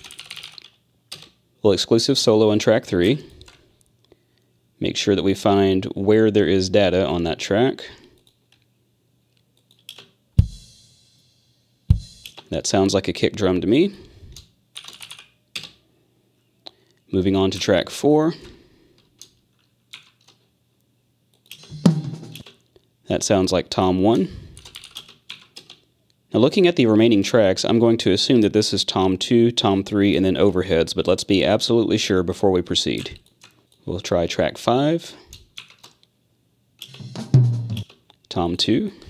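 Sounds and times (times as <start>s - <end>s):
keyboard and mouse clicks: 9.6s - 10.2s, 12.2s - 12.5s, 19.1s - 20.4s, 21.3s - 22.7s, 36.8s - 37.0s
tom drum hits: 10.4s - 11.0s, 11.9s - 12.2s, 21.7s - 22.4s, 36.9s - 37.8s.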